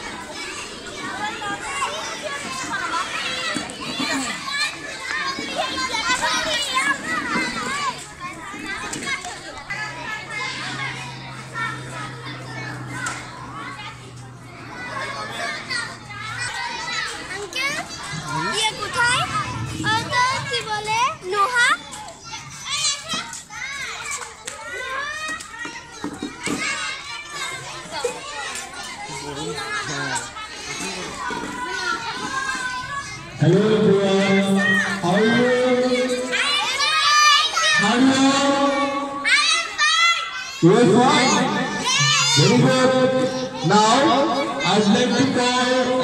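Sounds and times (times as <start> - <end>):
children chattering and calling: 0.0 - 46.0.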